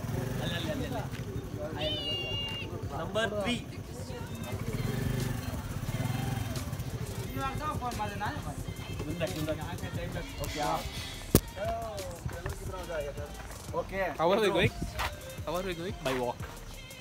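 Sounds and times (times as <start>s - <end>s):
group of people talking: 0.0s - 17.0s
background music: 2.7s - 17.0s.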